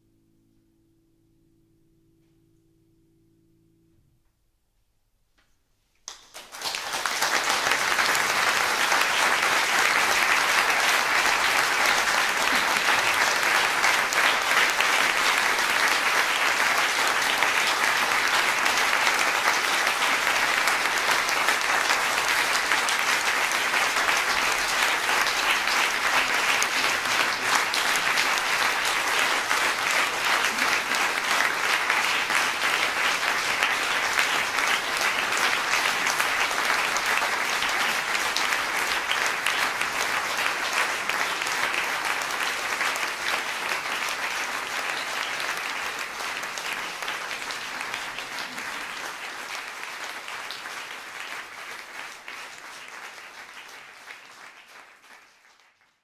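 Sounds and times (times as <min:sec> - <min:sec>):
audience applauding: 0:06.1 - 0:56.0.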